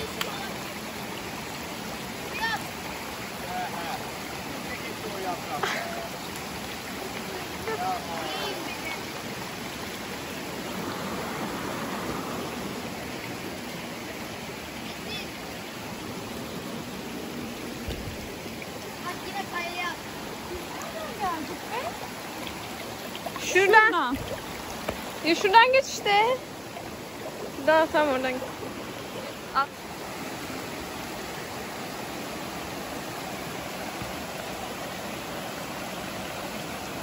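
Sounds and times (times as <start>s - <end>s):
stream water rushing: 0.0s - 37.0s.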